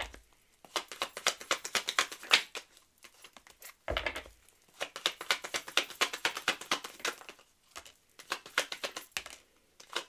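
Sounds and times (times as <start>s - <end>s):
cards shuffling and snapping: 0.0s - 10.0s.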